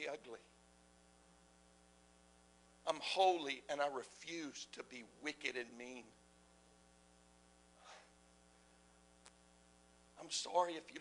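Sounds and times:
man speaking: 0.0 - 0.6, 2.9 - 6.2, 10.2 - 11.0
faint electrical hum: 0.0 - 11.0.

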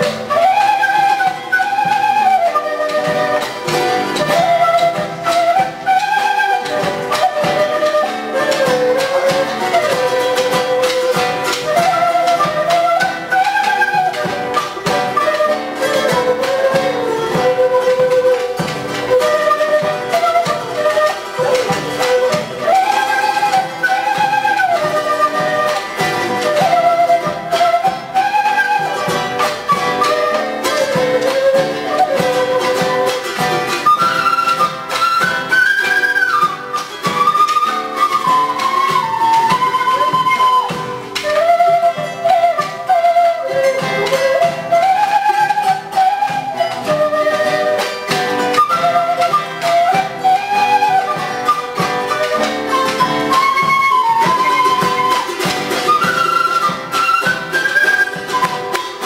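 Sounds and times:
drum: 0.0 - 59.0
flute melody with vibrato: 0.0 - 59.0
strummed strings: 0.0 - 59.0.

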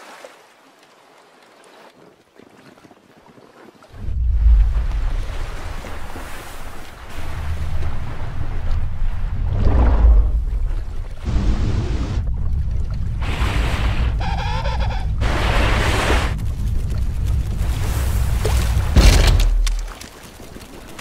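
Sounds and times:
sea sound effects: 3.9 - 21.0
deep low rumble: 4.0 - 6.2, 7.1 - 19.9
tense cartoon music: 11.3 - 19.4.

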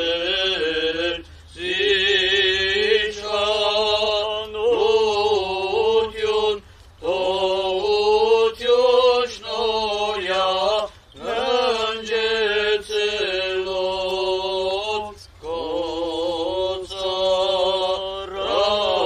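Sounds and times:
clergy chanting a hymn: 0.0 - 19.0.

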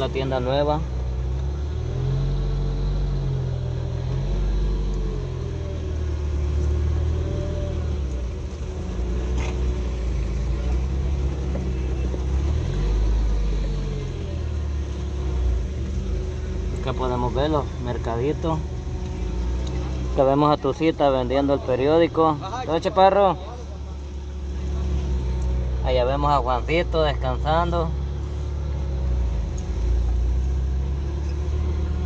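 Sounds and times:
car engine and road noise: 0.0 - 32.0.

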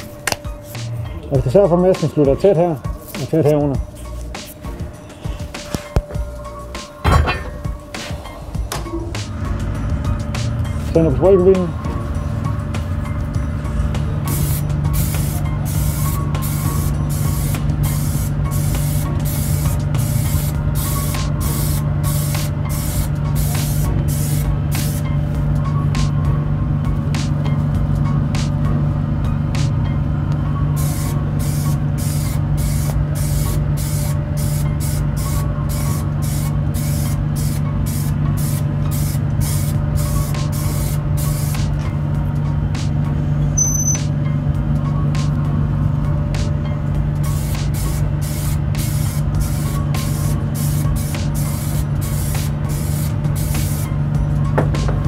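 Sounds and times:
extraction fan humming: 0.0 - 55.0
spray paint can hissing: 2.8 - 4.6, 14.3 - 25.1, 30.8 - 41.8, 43.6 - 44.0, 47.2 - 53.9.

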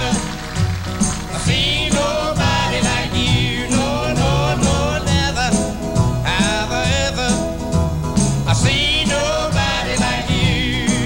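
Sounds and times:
man singing country song with band: 0.0 - 0.6, 1.2 - 11.0.

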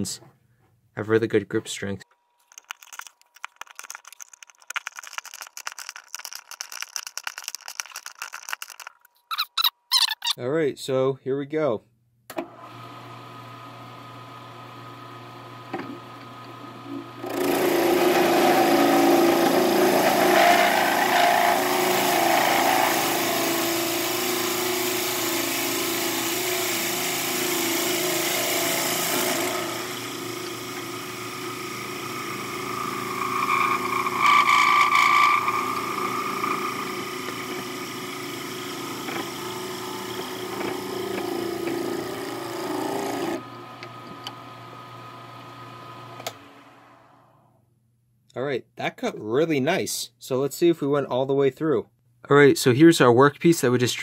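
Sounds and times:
drill bit boring into wood: 17.2 - 44.4
lathe motor humming: 17.3 - 46.8.

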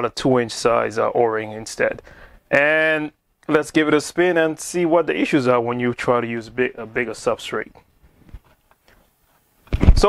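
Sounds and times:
man speaking: 0.0 - 7.9.

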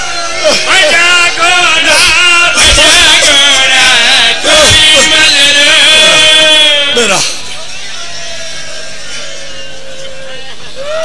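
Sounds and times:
murmur of seated crowd: 0.0 - 11.0.

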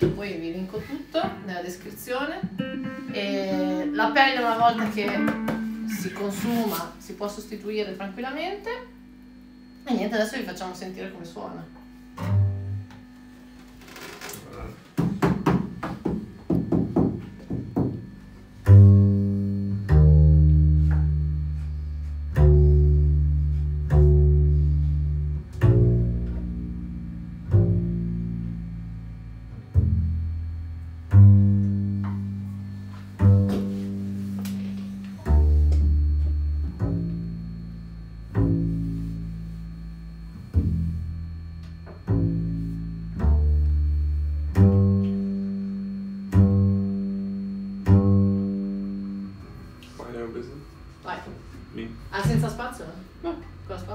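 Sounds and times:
double bass plucked pizzicato: 2.4 - 7.0, 12.2 - 13.0, 18.5 - 49.7.

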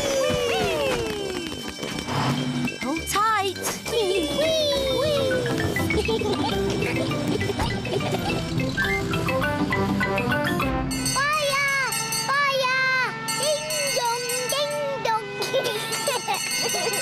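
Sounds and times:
busy cartoon music: 0.0 - 17.0.

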